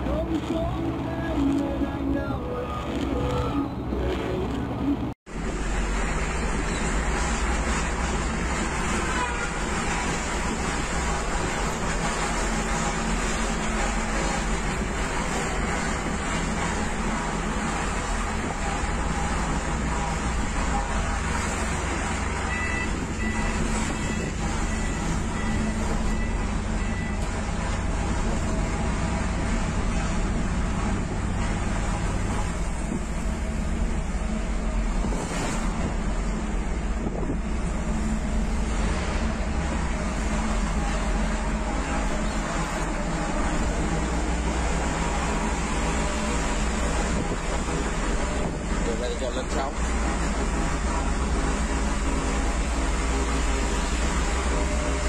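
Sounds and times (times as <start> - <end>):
road noise: 0.0 - 55.0
vehicle engine rumble: 0.0 - 55.0.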